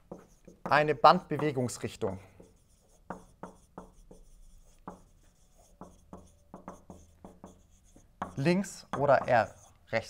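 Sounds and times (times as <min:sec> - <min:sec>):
marker writing on whiteboard: 0:00.0 - 0:10.0.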